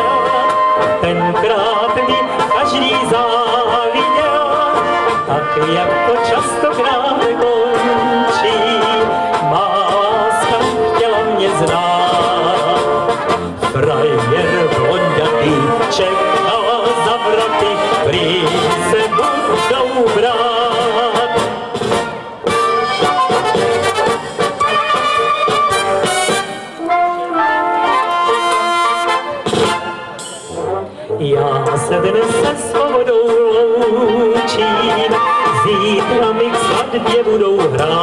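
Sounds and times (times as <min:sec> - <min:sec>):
clarinets and trumpets melody: 0:00.0 - 0:38.0
tubas: 0:00.0 - 0:38.0
drum kit: 0:20.5 - 0:26.8, 0:29.4 - 0:30.7.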